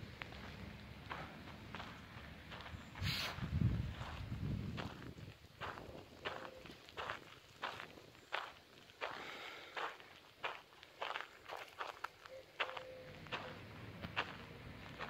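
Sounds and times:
footsteps on sandy dirt path: 0.0s - 15.0s.

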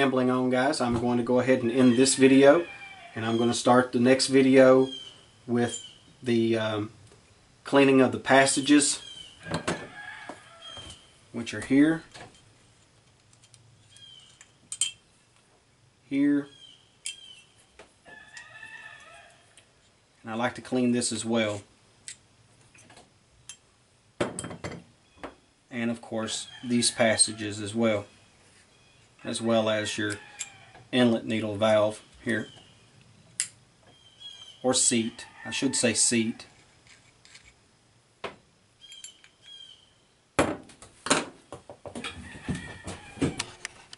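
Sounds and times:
screws and parts clinking: 13.1s - 15.0s, 36.5s - 37.6s
metal parts clinking on a table: 14.7s - 15.0s
metal parts clicking: 36.6s - 37.6s
faint high chirp: 38.8s - 40.1s.

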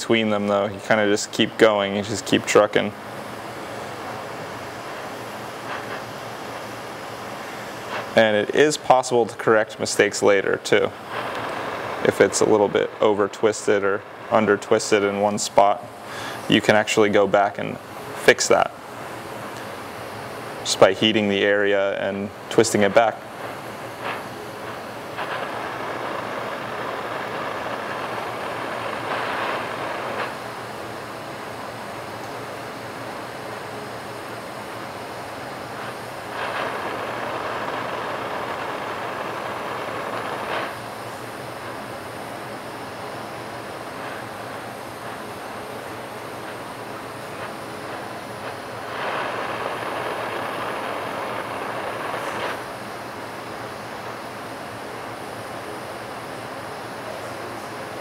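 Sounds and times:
torch flame rushing: 0.3s - 58.0s.

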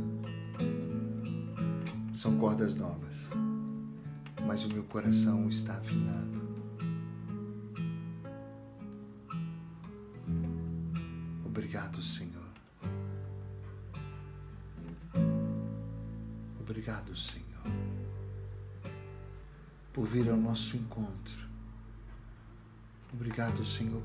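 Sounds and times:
acoustic guitar arpeggios: 0.0s - 24.0s.

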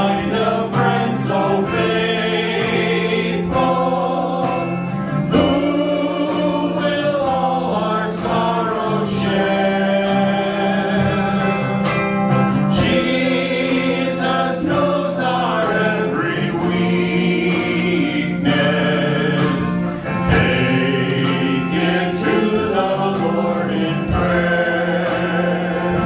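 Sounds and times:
group singing in harmony: 0.0s - 26.0s
instrumental accompaniment: 0.0s - 26.0s.

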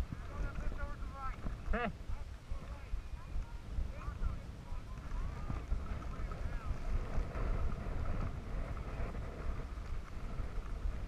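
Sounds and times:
faint voices: 0.0s - 9.9s
wind buffeting microphone: 0.0s - 11.0s.

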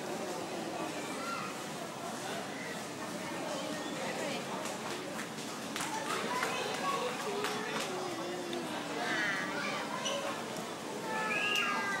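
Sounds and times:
murmur of chatter: 0.0s - 12.0s.

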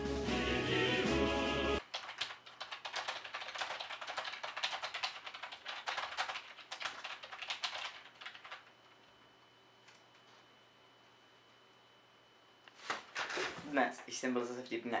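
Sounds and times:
music: 0.0s - 1.8s
typing on computer keyboard: 1.8s - 8.7s.

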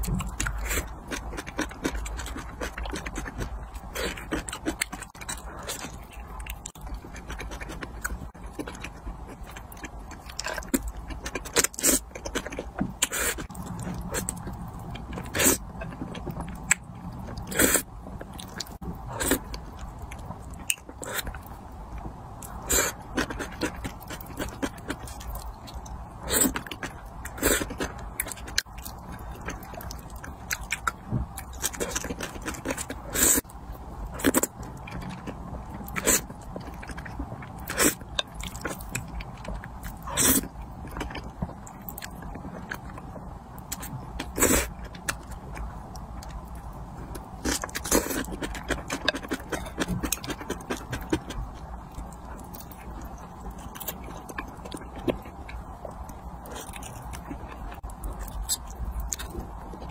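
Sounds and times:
chewing with wet mouth clicks: 0.0s - 33.5s, 34.1s - 59.9s.

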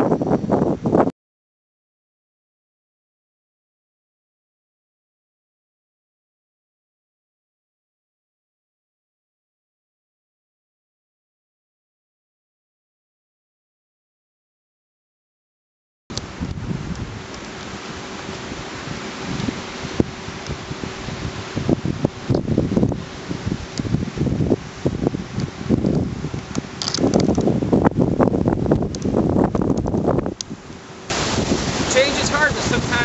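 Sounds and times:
wind buffeting microphone: 0.0s - 1.1s, 16.1s - 33.0s
surf at water's edge: 16.1s - 33.0s.

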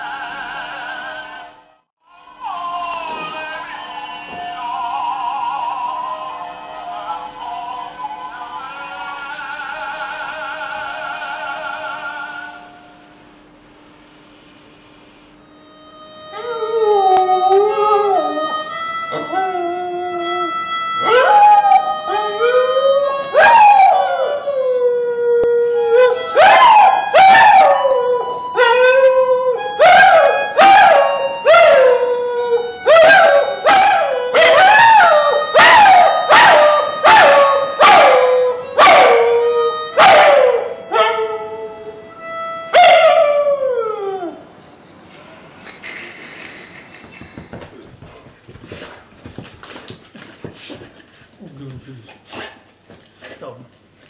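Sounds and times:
harmonica chords: 15.4s - 25.0s, 25.6s - 43.3s
dog howling: 16.2s - 41.8s.

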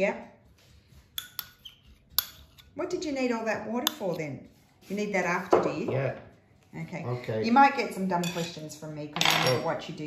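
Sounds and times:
metal spoon clinking china cup: 1.2s - 2.7s, 9.2s - 9.7s.

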